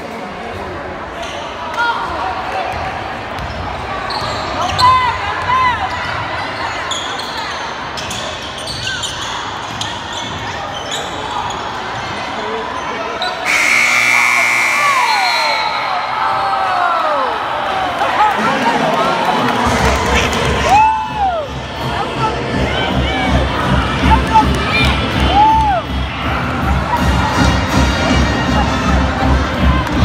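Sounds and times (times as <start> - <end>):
crowd talking: 0.0 - 30.0
sneaker squeaks: 3.4 - 5.2, 5.8 - 12.2, 12.8 - 16.0
steady high tone: 13.5 - 16.2.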